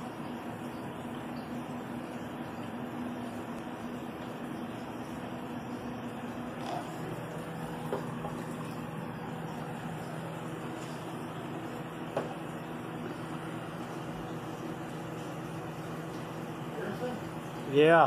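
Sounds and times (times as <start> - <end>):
air pump humming: 0.0 - 18.0
air stone bubbling: 0.0 - 18.0.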